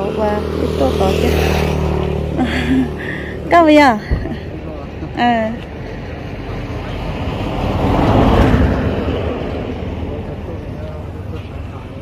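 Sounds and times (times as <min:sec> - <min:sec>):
vehicle passing by: 0:00.0 - 0:12.0.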